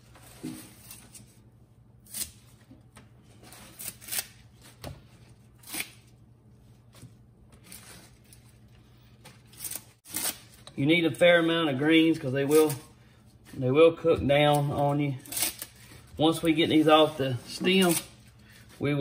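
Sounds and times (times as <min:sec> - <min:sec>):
leaves torn off stems: 0:03.7 - 0:04.8.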